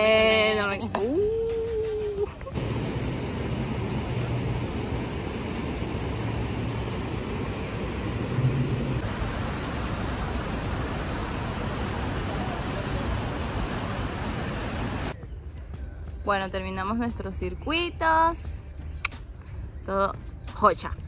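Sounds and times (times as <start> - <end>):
waterfalls rushing: 2.6 - 15.1.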